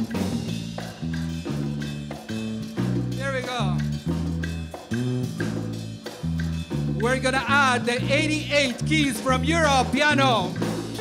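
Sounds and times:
electric bass line: 0.0 - 11.0
latin percussion: 0.0 - 11.0.

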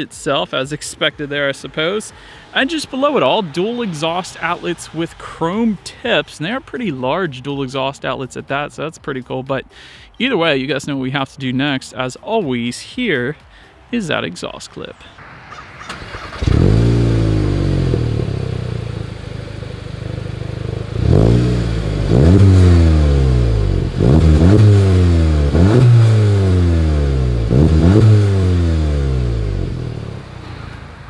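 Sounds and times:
car engine revving: 1.0 - 7.3, 15.2 - 31.0.

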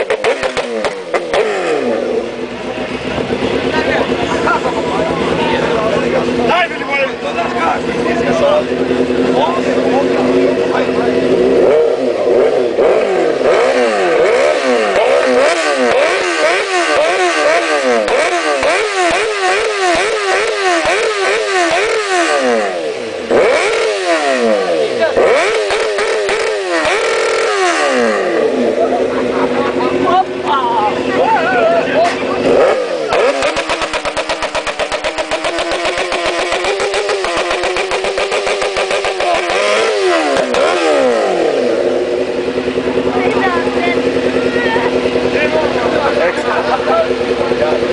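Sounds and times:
motorcycle engine revving: 0.0 - 47.9.

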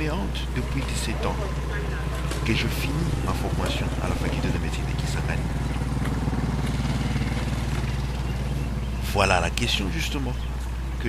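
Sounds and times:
engine humming: 0.0 - 11.0.

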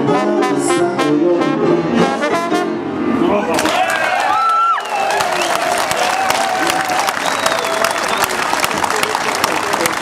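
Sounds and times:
jazz band with trumpet and trombone: 0.0 - 3.9
audience applause: 3.6 - 10.0.

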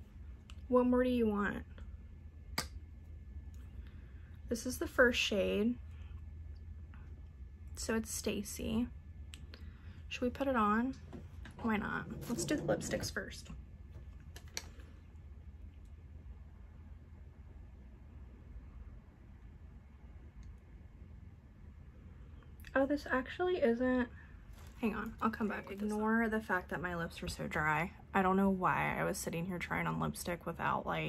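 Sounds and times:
low room hum: 0.0 - 31.0.

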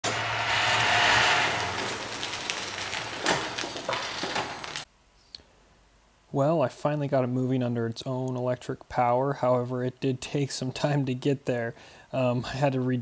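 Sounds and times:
electric motor hum: 0.0 - 4.8.

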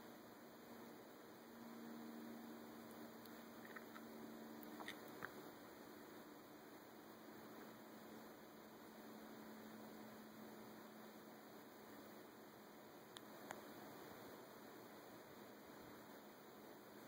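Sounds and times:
faint hiss and hum: 0.0 - 17.0.

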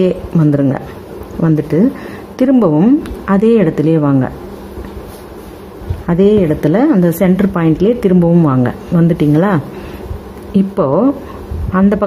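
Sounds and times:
person speaking: 0.0 - 9.8
steady low hum: 0.0 - 12.0.

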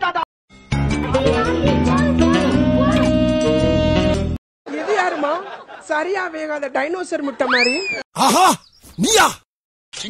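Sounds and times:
child squealing: 7.5 - 9.3.

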